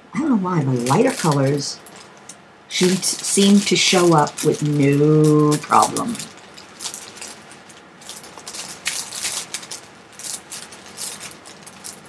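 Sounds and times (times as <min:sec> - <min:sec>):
plastic bags crinkling: 0:00.6 - 0:12.0.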